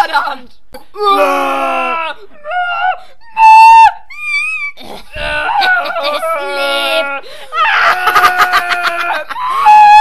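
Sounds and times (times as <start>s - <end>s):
person crying out wildly: 1.0s - 10.0s
person cackling laughter: 7.7s - 9.9s.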